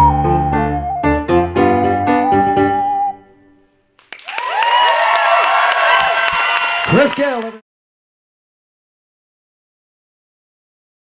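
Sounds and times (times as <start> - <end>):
held ocarina note: 0.0 - 3.6
audience applause and cheering: 4.0 - 7.6.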